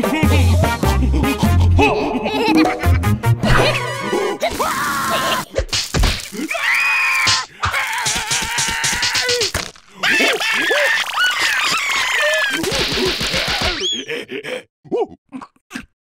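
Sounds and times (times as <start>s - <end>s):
cartoon voices yelling gibberish: 3.6s - 13.9s.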